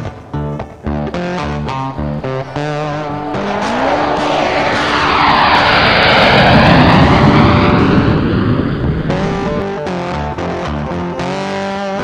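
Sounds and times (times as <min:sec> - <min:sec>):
jet aircraft passing: 0:01.7 - 0:10.1.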